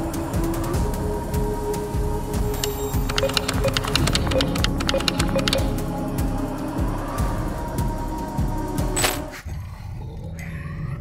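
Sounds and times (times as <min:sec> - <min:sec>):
low rumbling creature growl: 0:09.4 - 0:11.0.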